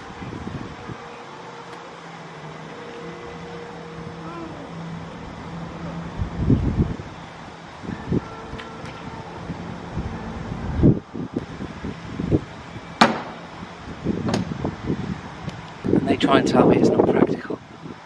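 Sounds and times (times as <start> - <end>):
car boot lid slamming: 13.0 - 13.5, 14.2 - 14.5.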